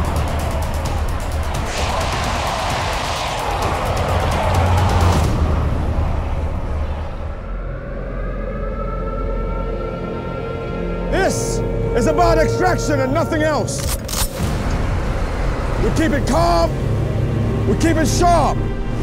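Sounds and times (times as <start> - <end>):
dark film trailer score: 0.0 - 19.0.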